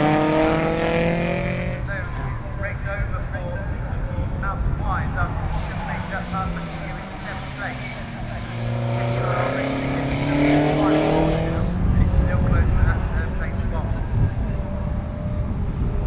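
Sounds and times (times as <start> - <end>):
race car engine accelerating: 0.0 - 2.5, 4.2 - 16.0.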